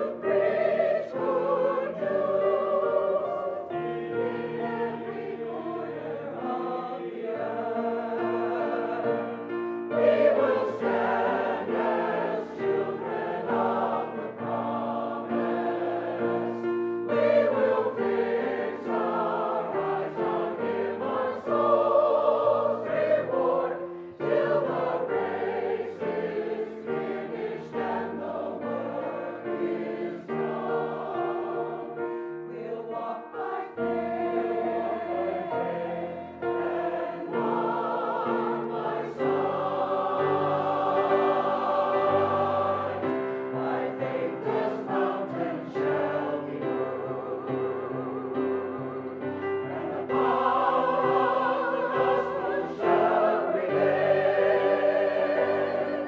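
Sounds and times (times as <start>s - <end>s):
large choir singing: 0.0s - 56.0s.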